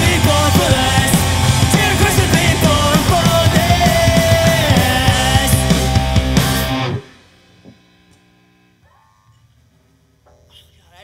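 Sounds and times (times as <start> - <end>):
pop-punk band playing live: 0.0 - 7.2.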